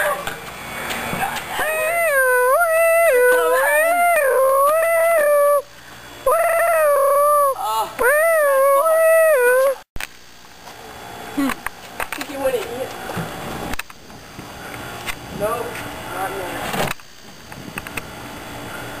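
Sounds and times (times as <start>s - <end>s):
long high-pitched howling: 1.1s - 9.9s.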